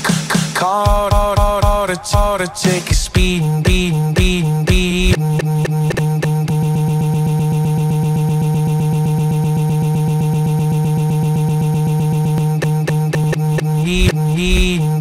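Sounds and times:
song playing: 0:00.0 - 0:07.5
stuttering music loop: 0:00.0 - 0:15.0.

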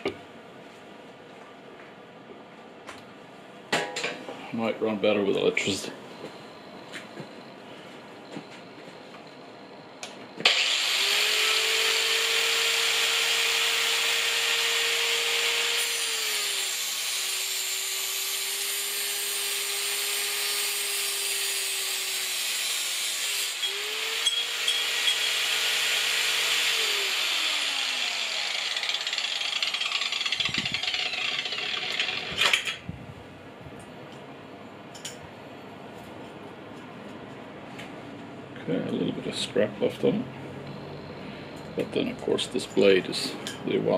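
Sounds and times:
angle grinder cutting pipe: 0:10.4 - 0:32.8.

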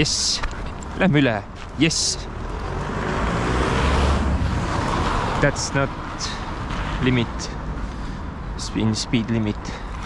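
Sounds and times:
passing cars rushing: 0:00.8 - 0:10.0.

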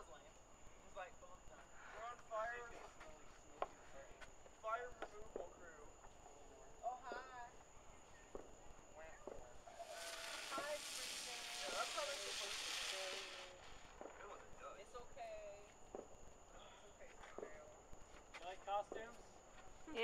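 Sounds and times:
people talking and laughing: 0:00.8 - 0:13.6
firework hissing: 0:09.5 - 0:15.6.

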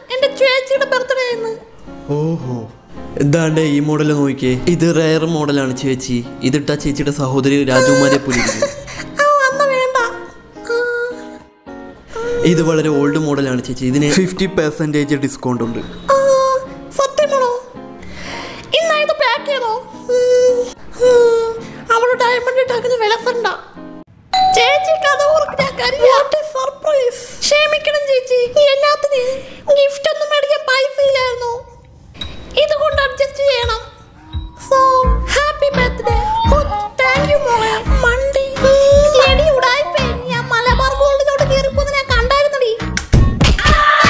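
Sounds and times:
person speaking: 0:07.6 - 0:08.8, 0:24.4 - 0:26.6
doorbell chime: 0:24.3 - 0:26.2.

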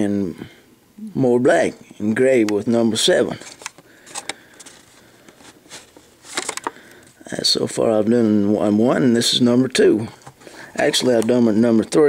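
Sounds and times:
plastic blister packaging crackling: 0:03.3 - 0:07.2.

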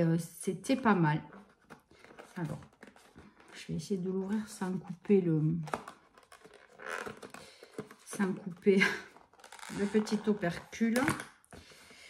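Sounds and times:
plastic tube cap scratching: 0:05.6 - 0:11.2.

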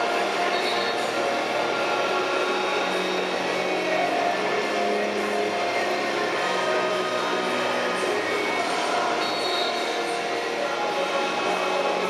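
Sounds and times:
crowd noise: 0:00.0 - 0:12.0
music over public address: 0:00.0 - 0:12.0.

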